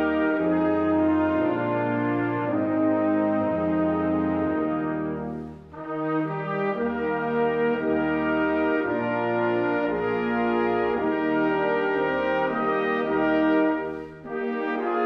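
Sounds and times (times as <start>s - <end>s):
brass ensemble playing held chords: 0.0s - 15.0s.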